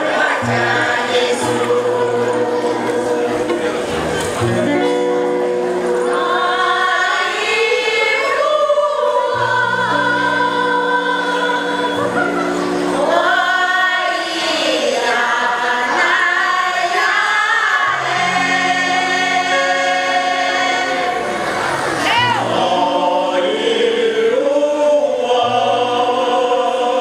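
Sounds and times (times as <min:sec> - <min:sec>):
choir singing in parts: 0:00.0 - 0:27.0.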